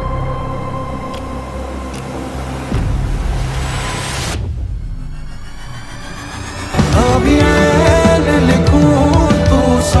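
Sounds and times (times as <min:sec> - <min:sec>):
low bass drone: 0:00.0 - 0:10.0
hissing riser: 0:00.8 - 0:08.8.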